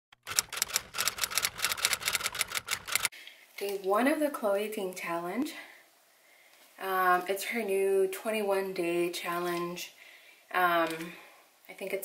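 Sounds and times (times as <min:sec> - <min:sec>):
typewriter key clacks: 0:00.2 - 0:03.1.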